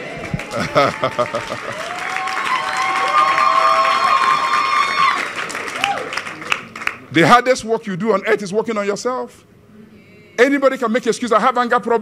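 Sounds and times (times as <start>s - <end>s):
congregation clapping and cheering: 0.0s - 7.2s.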